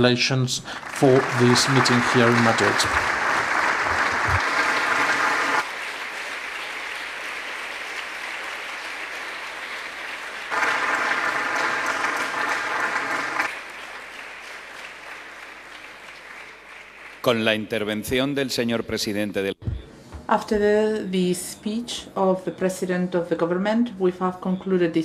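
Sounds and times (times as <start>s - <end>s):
audience applauding: 0.7s - 18.3s.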